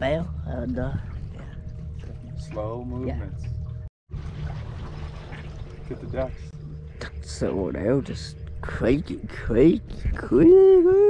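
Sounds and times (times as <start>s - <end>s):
faint steady hum: 0.0s - 11.0s
steady low rumble: 0.0s - 11.0s
water lapping against boat hull: 0.5s - 7.4s.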